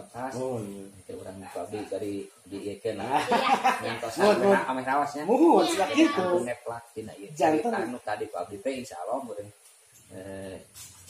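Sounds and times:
person speaking: 0:00.0 - 0:10.7.

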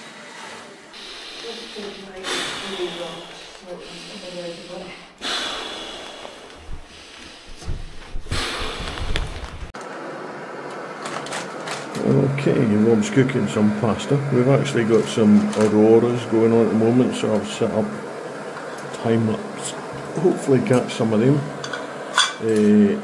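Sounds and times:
hissing exhalations into a valve: 0:00.9 - 0:09.7
person breathing in: 0:01.0 - 0:09.7.

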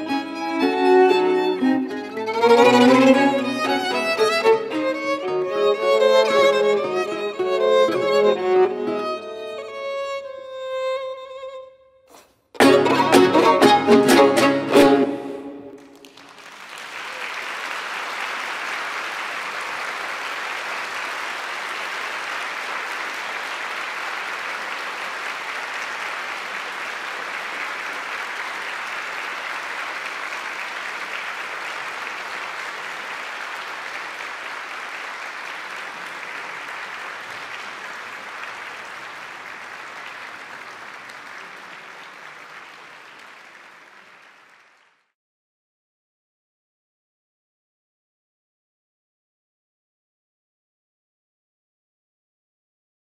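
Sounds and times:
audience applauding: 0:00.0 - 0:09.2, 0:12.6 - 0:45.2.

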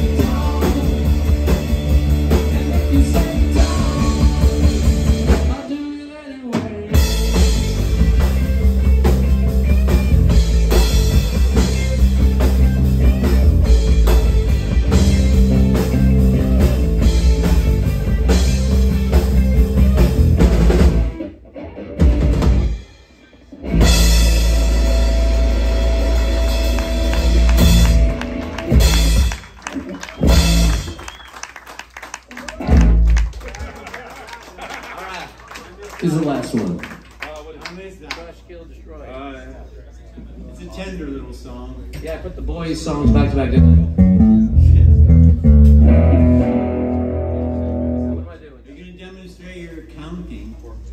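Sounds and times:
rock band playing loudly: 0:00.0 - 0:33.9, 0:43.0 - 0:48.3.

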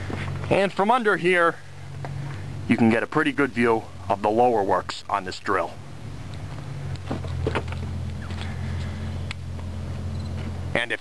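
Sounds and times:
engine running: 0:00.0 - 0:11.0.

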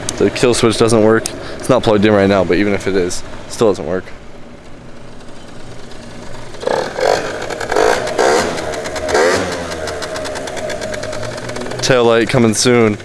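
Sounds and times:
scooter engine idling and revving: 0:04.3 - 0:13.0.

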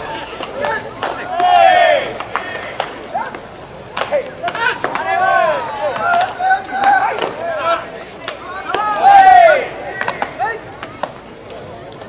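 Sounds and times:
scattered hand claps: 0:00.3 - 0:05.2, 0:05.9 - 0:07.4, 0:09.9 - 0:12.0.

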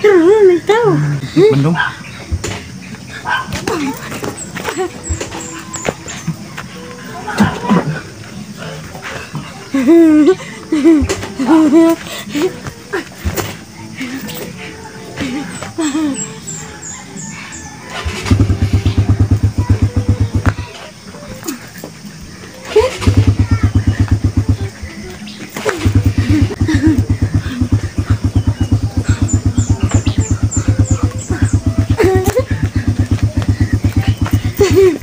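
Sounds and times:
low rapid pulsing: 0:18.0 - 0:20.7, 0:22.9 - 0:25.0, 0:25.7 - 0:35.0.

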